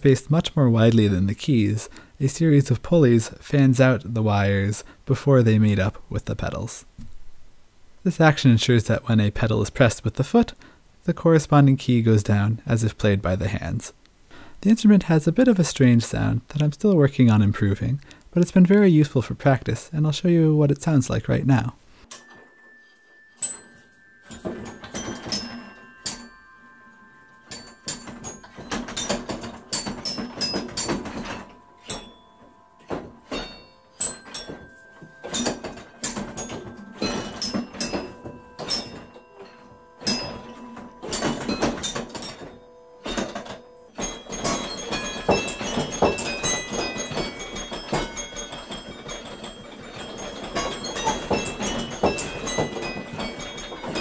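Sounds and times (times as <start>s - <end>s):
metal tube chimes playing a tune: 22.0s - 54.0s.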